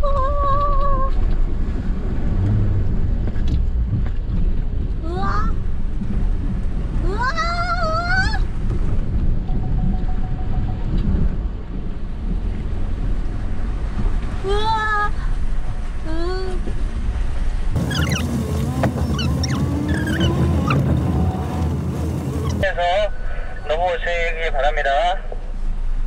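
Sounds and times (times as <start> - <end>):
engine and tyres rumbling: 0.0 - 26.0
water washing around wheels: 0.2 - 9.6, 11.7 - 22.6.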